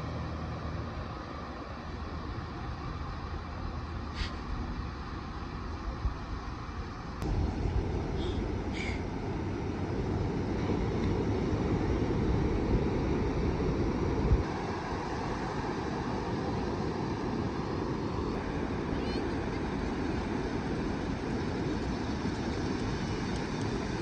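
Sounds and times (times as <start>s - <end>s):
wind rumbling on microphone: 4.5s - 24.0s
ocean surf breaking: 7.3s - 24.0s.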